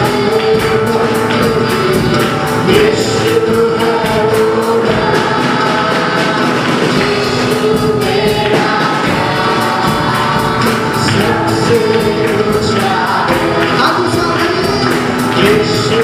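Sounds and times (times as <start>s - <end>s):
choir singing gospel song: 0.0s - 16.0s
percussion beat: 0.0s - 16.0s.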